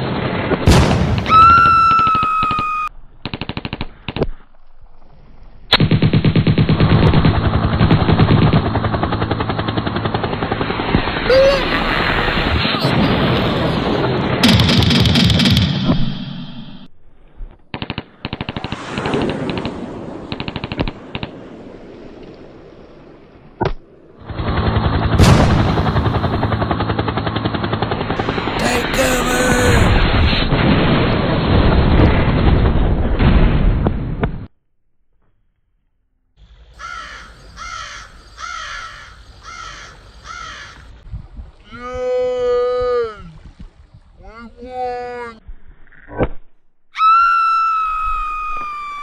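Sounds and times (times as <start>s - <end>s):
machine-gun fire: 0.0s - 1.3s, 3.2s - 4.2s, 5.8s - 11.2s, 13.0s - 16.1s, 17.7s - 21.4s, 24.2s - 28.6s
rapid gunfire-like cracks: 3.2s - 4.3s, 5.8s - 11.2s, 12.8s - 16.2s, 17.7s - 21.6s, 24.2s - 28.6s
loud bang: 25.2s - 26.6s.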